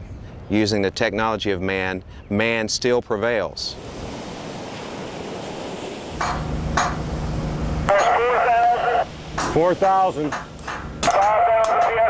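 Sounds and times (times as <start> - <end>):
wind: 0.0 - 12.0
surf: 3.6 - 12.0
low steady machine hum: 6.0 - 11.2.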